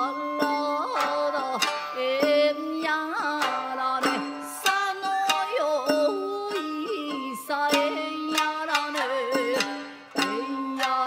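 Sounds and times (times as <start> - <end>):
shamisen plucking: 0.0 - 11.0
woman singing: 0.0 - 11.0.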